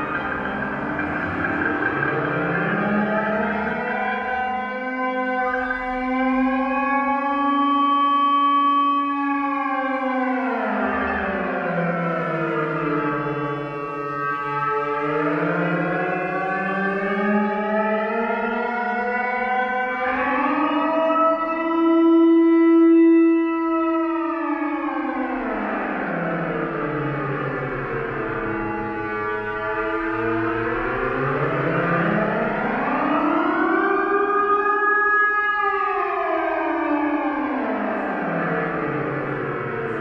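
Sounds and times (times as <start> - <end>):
synthesizer drone: 0.0 - 20.7, 25.2 - 40.0.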